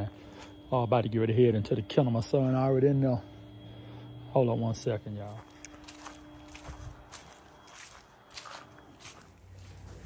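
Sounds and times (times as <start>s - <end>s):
faint footsteps walking: 5.2s - 10.0s.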